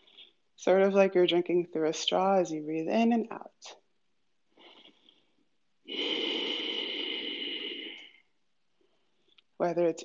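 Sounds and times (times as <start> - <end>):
long airy breath: 5.9 - 8.3.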